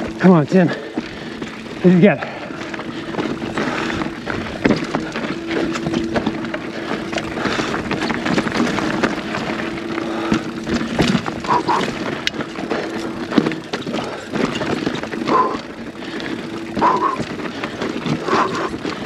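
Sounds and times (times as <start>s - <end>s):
bike knocking and rattling: 0.0s - 19.0s
steady buzz: 0.0s - 19.0s
tyres crunching over dirt and stones: 0.0s - 19.0s.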